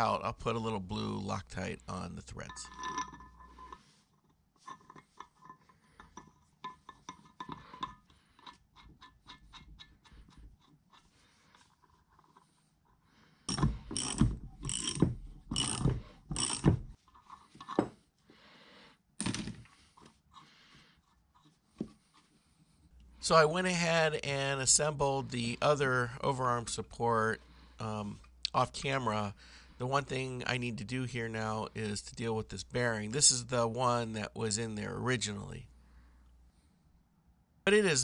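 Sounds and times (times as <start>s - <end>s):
metal scraping and clanking: 2.3s - 4.0s
small metallic clicks: 13.5s - 17.8s.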